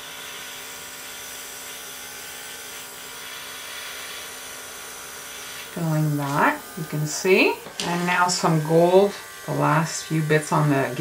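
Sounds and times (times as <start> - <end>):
compressor humming: 5.1 - 11.0.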